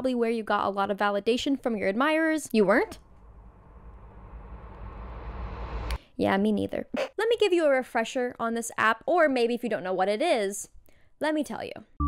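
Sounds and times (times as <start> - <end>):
low rumbling noise: 3.0 - 6.0.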